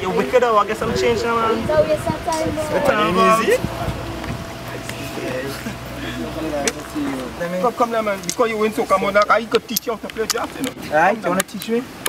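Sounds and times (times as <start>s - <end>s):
steady low hum: 0.4s - 10.6s.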